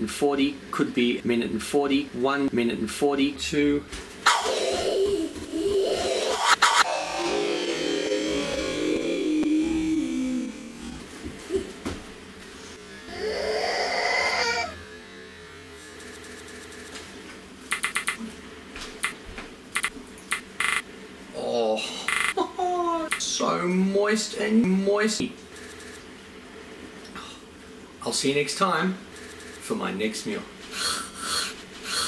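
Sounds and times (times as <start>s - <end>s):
rising glide: 14.2s - 16.8s
rapid stutter-cut repeats: 15.8s - 17.0s, 17.7s - 18.2s, 19.8s - 20.8s.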